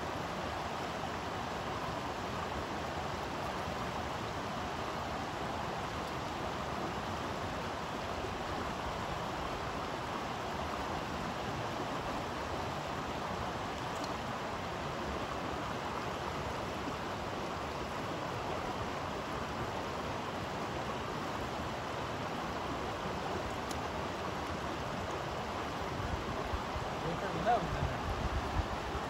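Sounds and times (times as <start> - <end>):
stream running over rocks: 0.0 - 29.0.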